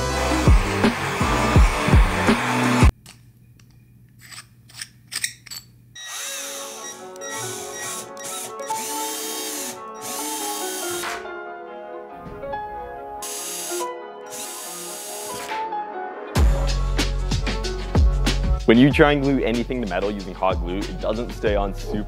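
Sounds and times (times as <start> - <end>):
music with heavy beat: 0.0 - 2.9, 16.4 - 19.7
cordless drill boring into metal: 6.0 - 11.0, 13.2 - 15.5.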